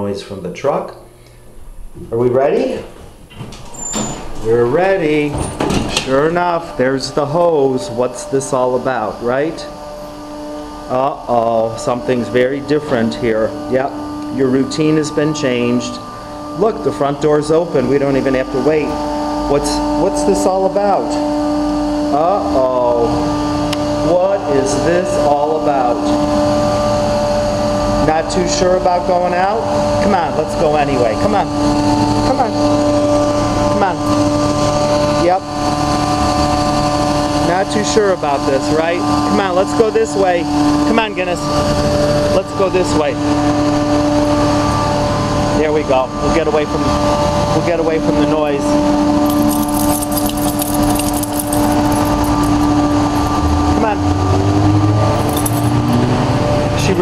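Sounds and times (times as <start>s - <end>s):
carpet-cleaning machine droning: 4.4s - 57.0s
city street noise: 40.2s - 57.0s.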